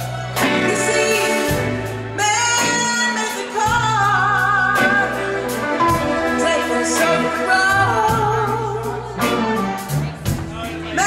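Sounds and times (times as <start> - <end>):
woman singing: 0.0 - 9.5
live band playing: 0.0 - 11.0.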